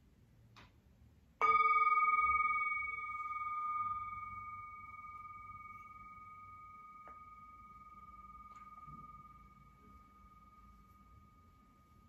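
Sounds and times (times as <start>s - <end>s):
struck bell ringing: 1.4s - 12.0s.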